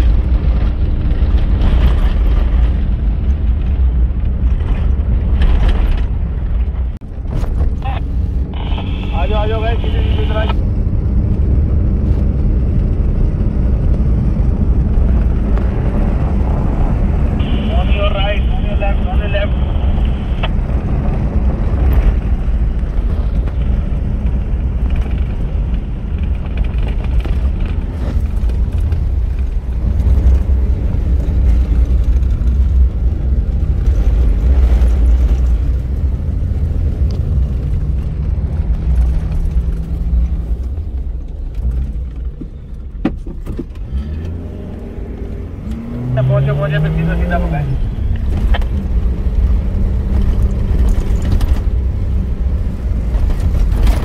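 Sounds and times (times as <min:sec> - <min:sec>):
vehicle engine and tyres rumbling: 0:00.0 - 0:54.0.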